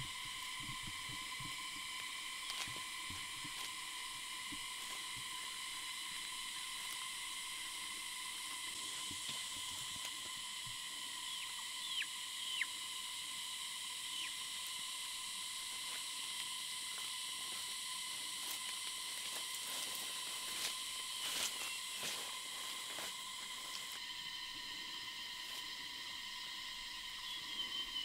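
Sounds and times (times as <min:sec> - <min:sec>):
high insect drone: 0:00.0 - 0:28.0.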